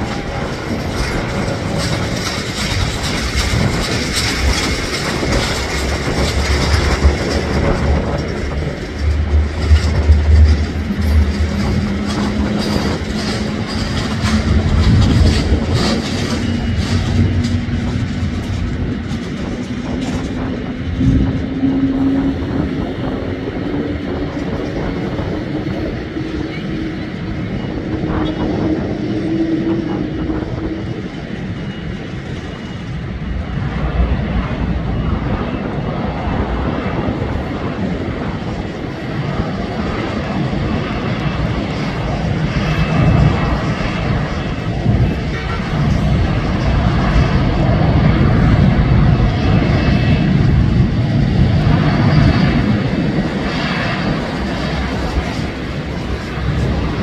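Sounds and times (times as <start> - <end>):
deep jet rumble: 0.0 - 57.0
jet engine roar: 0.0 - 57.0.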